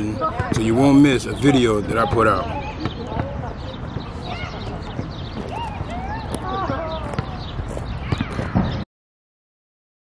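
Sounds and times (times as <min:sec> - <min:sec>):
birds chirping: 0:00.0 - 0:08.9.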